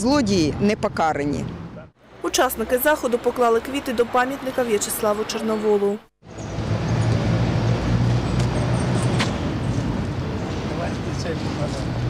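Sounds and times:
rumble of traffic: 0.0 - 12.0.

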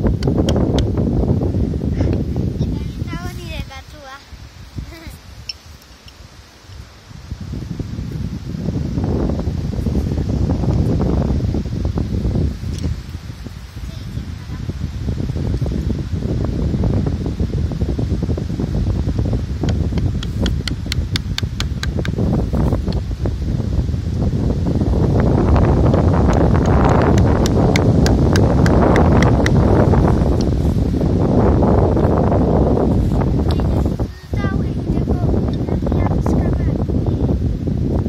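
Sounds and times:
wind: 0.0 - 38.0.

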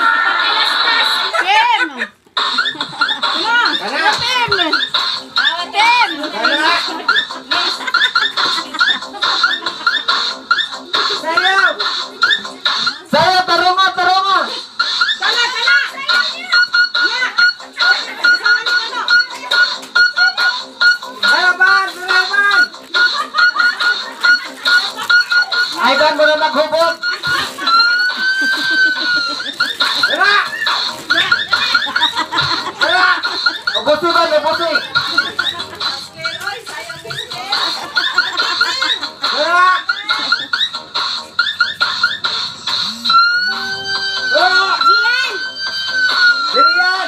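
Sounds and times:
children calling out and laughing: 0.0 - 13.1, 14.6 - 20.8, 27.1 - 34.1, 34.7 - 41.9.

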